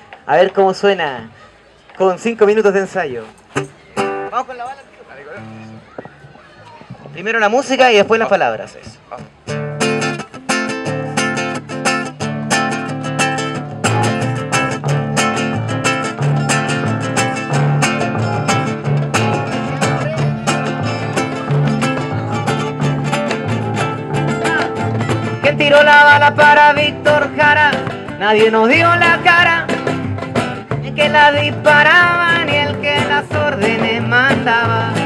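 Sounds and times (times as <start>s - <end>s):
strummed acoustic guitar: 9.1s - 35.0s
double bass: 9.2s - 35.0s.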